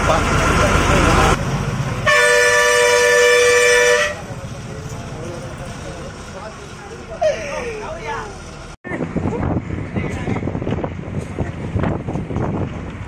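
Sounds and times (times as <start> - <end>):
bus running noise: 0.0 - 13.0
bus horn blast: 2.0 - 4.3.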